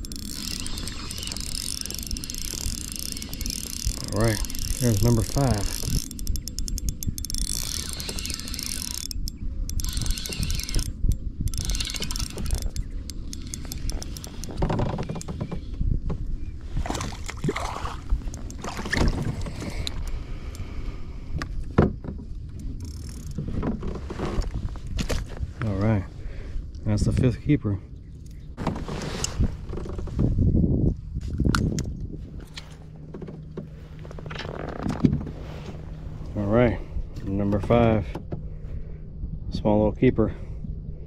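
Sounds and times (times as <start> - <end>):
spinning reel cranking: 0.0 - 15.1
steady low rumble: 0.0 - 28.7, 29.4 - 41.0
water splashing: 16.8 - 19.5.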